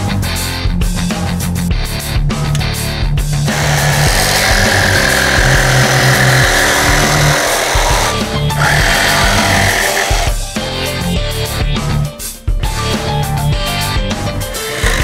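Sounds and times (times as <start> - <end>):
rock music: 0.0 - 15.0
jigsaw cutting laminate: 3.5 - 10.4, 14.5 - 15.0.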